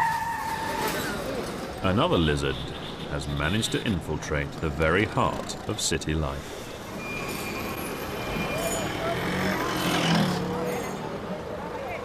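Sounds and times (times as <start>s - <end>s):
traffic: 0.0s - 12.0s.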